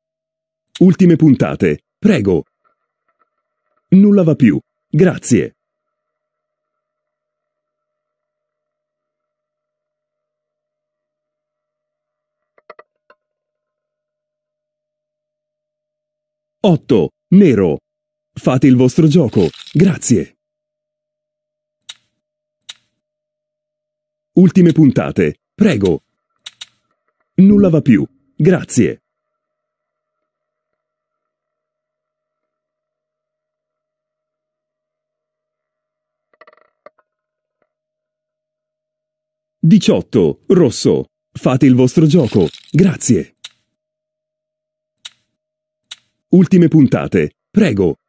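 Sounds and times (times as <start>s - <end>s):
faint steady tone: 1.9s - 12.5s
roulette ball rattling in wheel: 12.6s - 13.2s, 19.2s - 19.9s, 36.3s - 37.0s, 42.1s - 42.8s.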